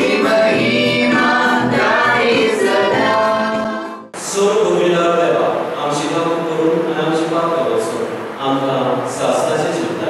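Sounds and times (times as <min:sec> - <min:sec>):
men singing together: 0:00.0 - 0:04.0
man speaking into a microphone: 0:04.2 - 0:10.0.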